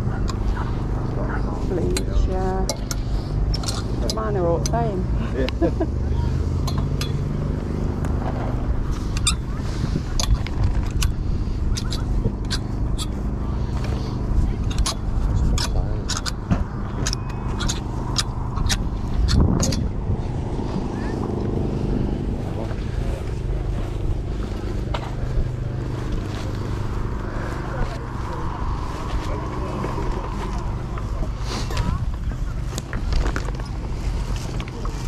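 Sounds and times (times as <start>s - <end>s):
low mechanical hum: 0.0s - 35.0s
wind rumbling on microphone: 0.0s - 35.0s.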